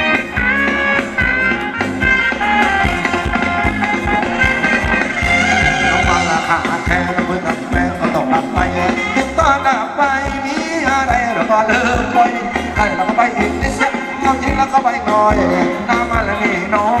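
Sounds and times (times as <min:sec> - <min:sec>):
live band over loudspeakers: 0:00.0 - 0:17.0
person singing: 0:05.3 - 0:17.0.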